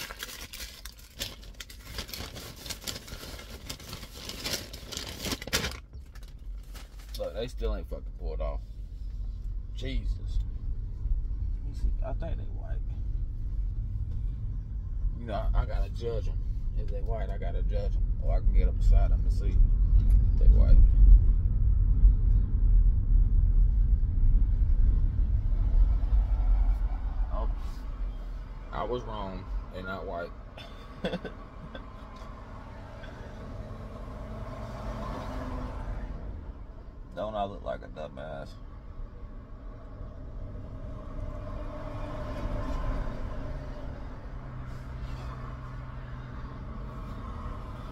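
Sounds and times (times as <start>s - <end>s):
car rumble from inside cabin: 0.0s - 47.9s
steady low hum: 7.4s - 29.7s.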